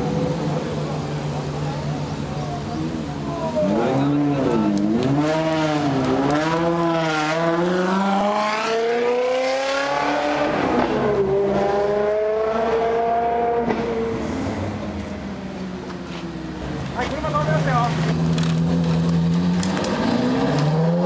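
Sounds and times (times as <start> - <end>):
sports car engine accelerating: 0.0 - 21.0.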